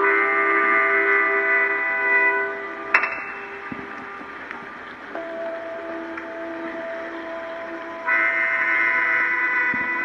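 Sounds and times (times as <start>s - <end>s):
synthesizer drone tones: 2.0s - 10.0s.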